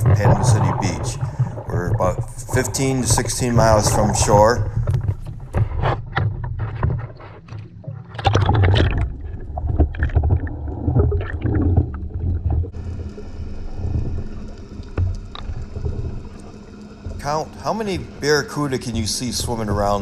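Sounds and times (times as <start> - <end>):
low rumble: 0.0 - 5.7
muffled underwater wash: 0.0 - 20.0
water sloshing and splashing: 0.0 - 20.0
steady multi-tone hum: 12.8 - 20.0.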